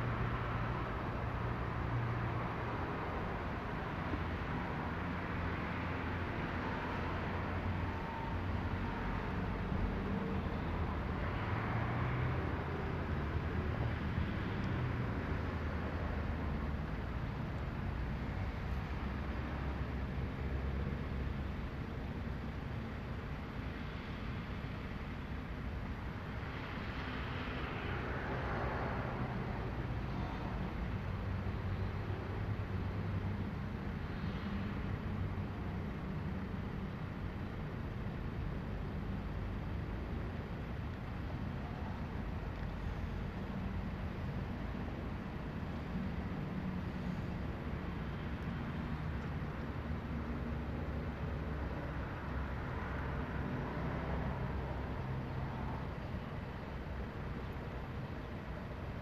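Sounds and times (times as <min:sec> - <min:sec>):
low rumble of road traffic: 0:00.0 - 0:59.0.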